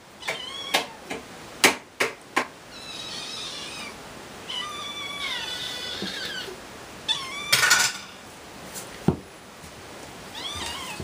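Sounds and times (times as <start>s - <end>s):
kittens mewing: 0.1s - 1.1s, 2.7s - 8.3s, 10.3s - 11.0s.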